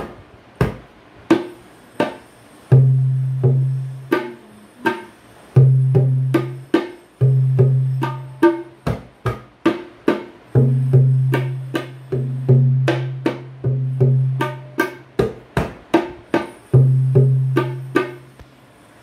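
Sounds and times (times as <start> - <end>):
sharp ringing tabla strokes: 1.3 - 9.4, 10.2 - 15.5, 16.3 - 18.4.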